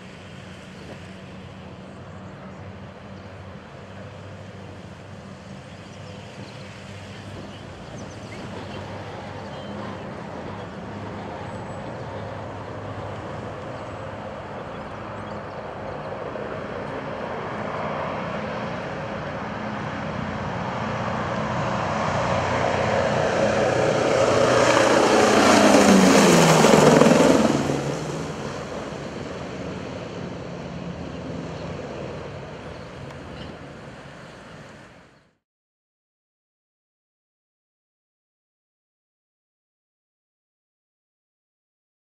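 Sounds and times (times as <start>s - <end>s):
propeller plane engines droning: 0.0s - 35.4s.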